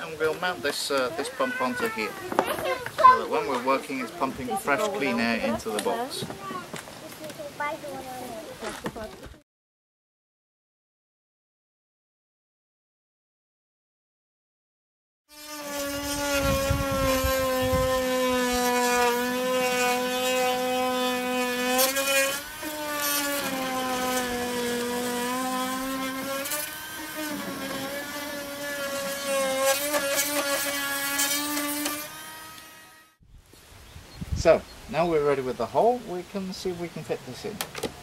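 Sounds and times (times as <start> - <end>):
rotary tool cutting plastic: 15.3 - 33.2.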